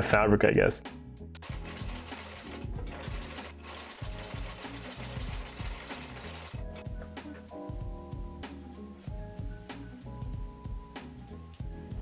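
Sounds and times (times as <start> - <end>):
background music: 0.0 - 12.0
sewing machine running: 1.4 - 6.8.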